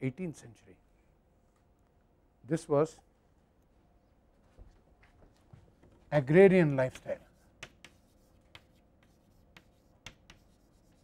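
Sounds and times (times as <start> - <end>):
chalk writing on blackboard: 7.0 - 11.0
chalk taps: 7.1 - 11.0.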